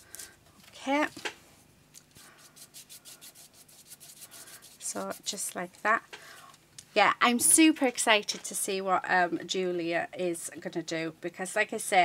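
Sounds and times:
paintbrush stroking on paper: 2.2s - 5.6s.

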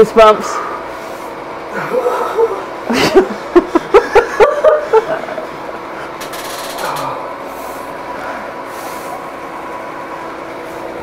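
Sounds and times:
mechanical hum: 0.0s - 11.0s
short laughs: 1.7s - 5.4s.

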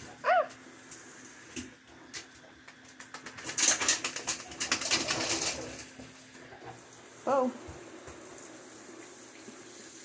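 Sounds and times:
running shower: 0.0s - 10.0s.

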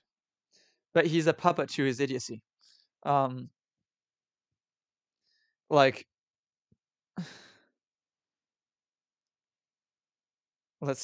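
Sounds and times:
man sighing breathily: 7.2s - 7.6s.

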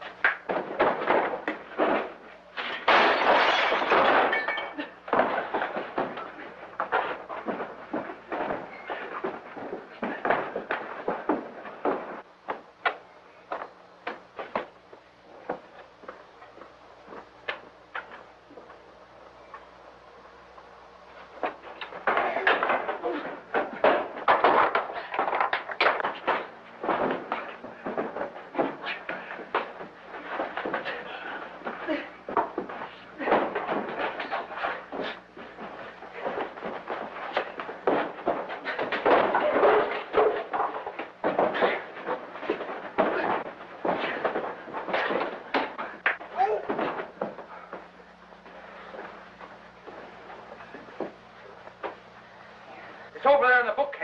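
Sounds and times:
fistfight blows and scuffling: 0.0s - 53.4s.

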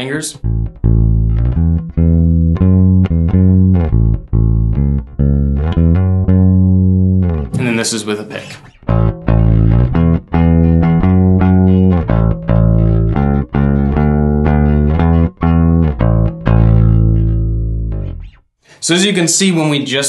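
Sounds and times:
picked bass guitar notes: 0.0s - 18.4s.

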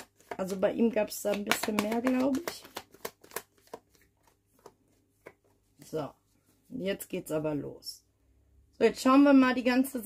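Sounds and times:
cards shuffled by hand: 0.0s - 5.9s.

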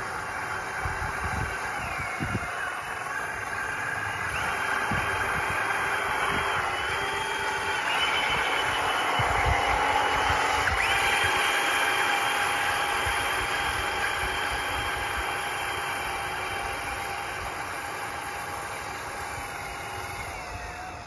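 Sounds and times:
electric motors whining: 0.0s - 21.0s.

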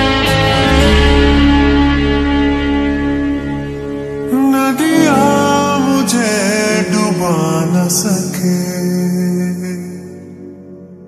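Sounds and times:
slowed worship song with reverb: 0.6s - 11.0s.

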